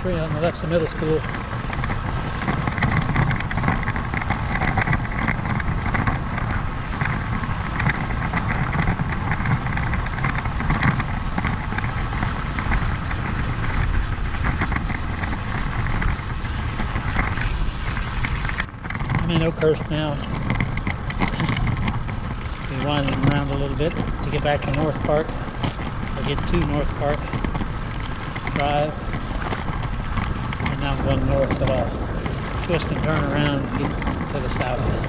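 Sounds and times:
bike tyres road noise: 0:00.0 - 0:35.0
wind rush on microphone: 0:00.0 - 0:35.0.

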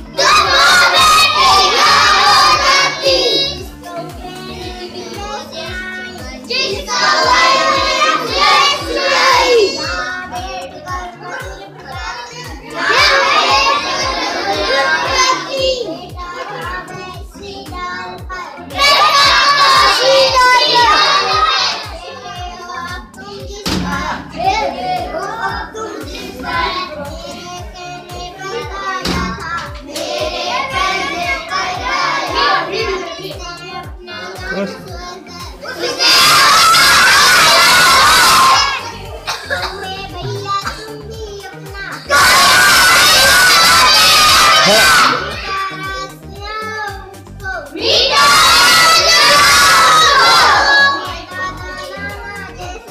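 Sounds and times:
background music with bass beat: 0:00.0 - 0:52.9
children's voices: 0:00.0 - 0:52.9.

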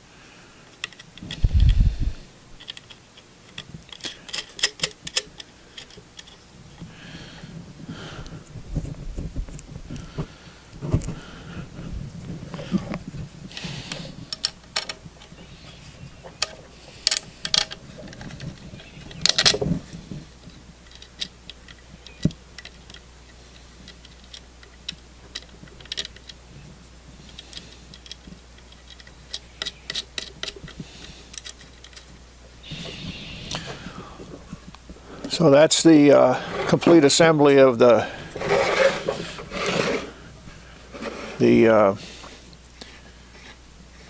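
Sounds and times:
metal parts clicking and knocking: 0:02.6 - 0:06.4, 0:13.9 - 0:15.3, 0:16.4 - 0:19.7, 0:23.9 - 0:26.4, 0:27.4 - 0:32.1
handling rustles: 0:08.3 - 0:44.0.

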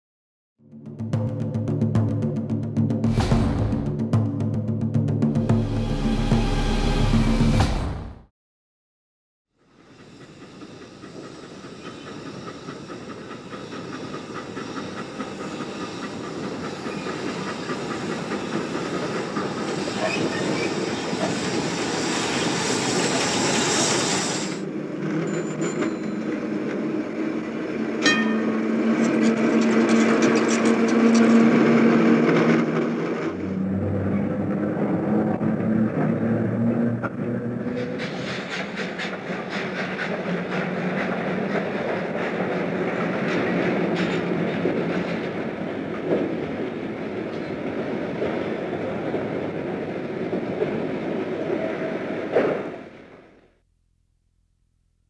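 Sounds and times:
rail vehicle rumbling: 0:09.6 - 0:53.4.

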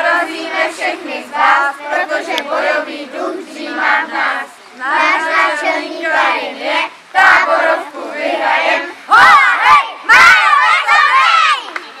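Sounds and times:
children shouting a chant: 0:00.0 - 0:12.0.

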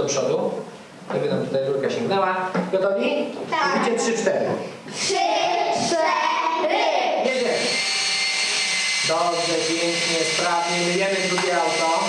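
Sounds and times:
children's voices: 0:04.9 - 0:07.3
faint high whine: 0:05.0 - 0:12.0
small pump running: 0:07.3 - 0:12.0.

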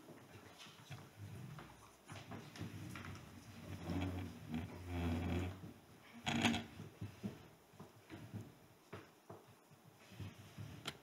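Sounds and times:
soft knocks and rustling: 0:00.0 - 0:11.0.

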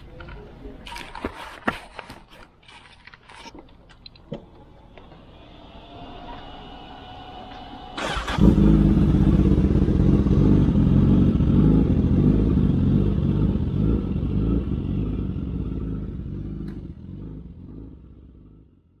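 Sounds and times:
motorcycle engine idling: 0:08.0 - 0:19.0.

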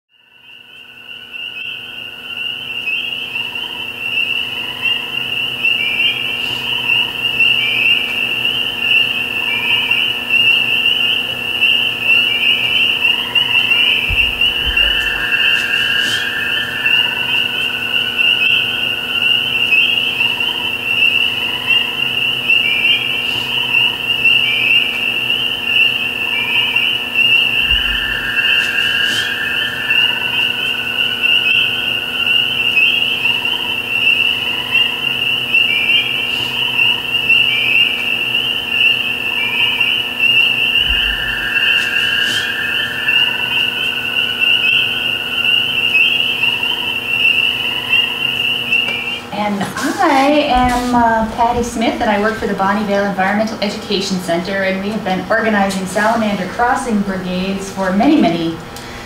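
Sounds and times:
frogs peeping: 0:00.2 - 0:59.0
lower frog calls: 0:00.2 - 0:59.0
low thumps: 0:13.8 - 0:18.8, 0:27.5 - 0:31.1, 0:40.7 - 0:44.2.

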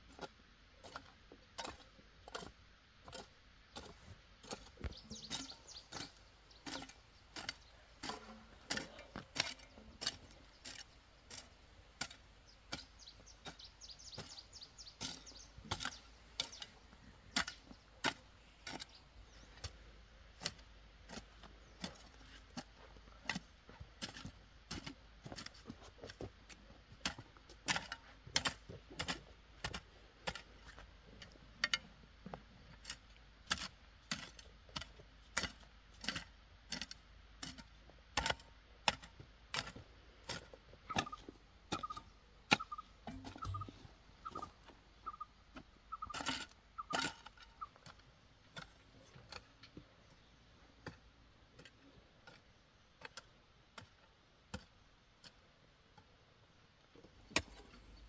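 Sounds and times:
hoe chopping into soil: 0:27.0 - 0:30.5.

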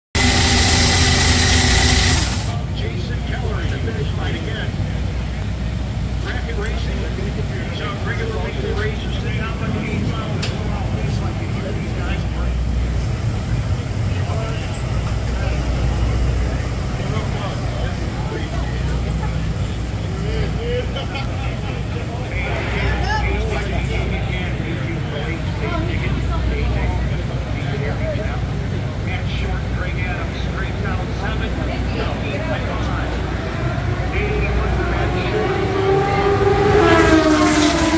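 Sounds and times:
steady low rumble: 0:01.0 - 0:27.7
people talking in background: 0:01.0 - 0:37.9.

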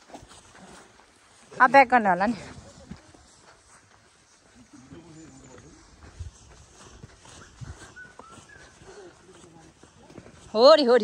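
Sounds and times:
footsteps jogging on dirt trail: 0:00.0 - 0:11.0.

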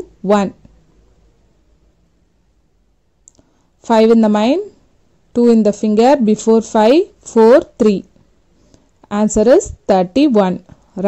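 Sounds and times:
woman speaking: 0:00.0 - 0:00.7, 0:03.8 - 0:08.1, 0:09.1 - 0:11.0.

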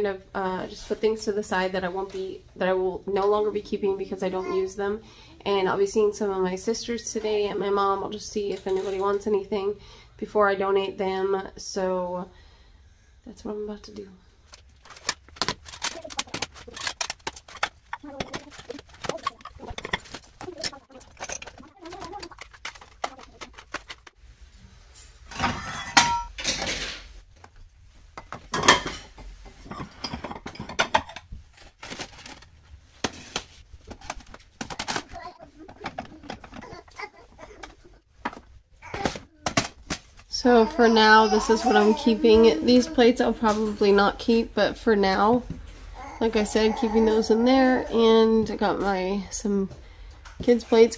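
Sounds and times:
dishes clattering: 0:14.9 - 0:24.1, 0:25.3 - 0:27.1, 0:28.1 - 0:31.4, 0:33.0 - 0:40.0.

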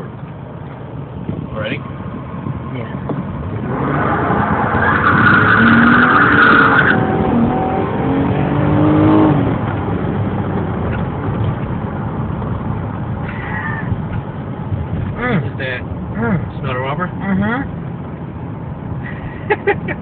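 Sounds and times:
car engine revving: 0:02.0 - 0:13.4.

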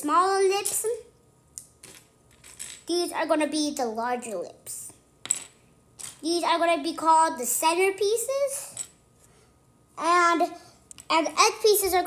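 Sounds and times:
puzzle pieces clicking on table: 0:01.6 - 0:02.9.

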